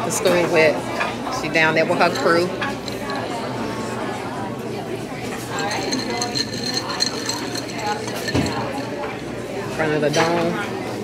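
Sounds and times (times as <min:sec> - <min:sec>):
restaurant chatter: 0:00.0 - 0:11.0
ice clinking in a glass: 0:02.2 - 0:03.5, 0:05.4 - 0:09.2.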